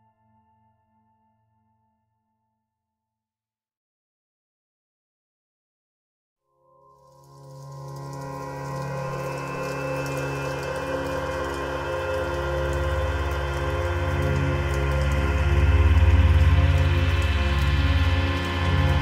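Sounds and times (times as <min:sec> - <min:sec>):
ambient electronic drone music: 0:06.6 - 0:19.0
rain-like hiss: 0:06.9 - 0:19.0.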